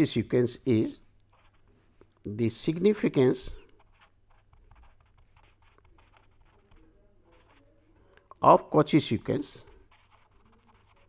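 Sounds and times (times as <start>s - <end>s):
pen writing on paper: 1.3s - 1.7s, 3.7s - 7.8s, 9.6s - 11.0s.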